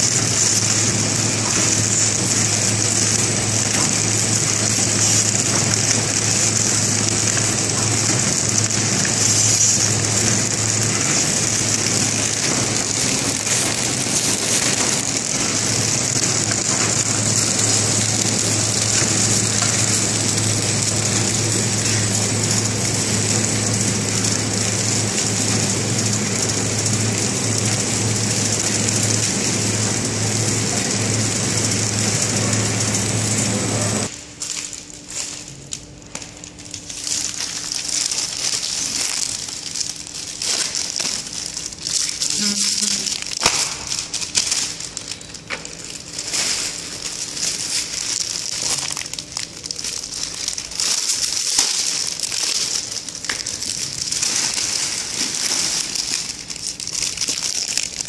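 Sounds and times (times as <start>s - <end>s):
packing machine running: 0.0s - 58.0s
plastic film crinkling: 0.0s - 58.0s.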